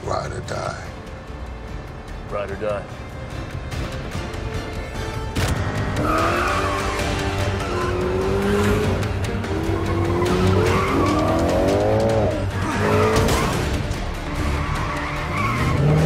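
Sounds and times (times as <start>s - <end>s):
film score music: 0.0s - 16.0s
car engines revving: 5.2s - 16.0s.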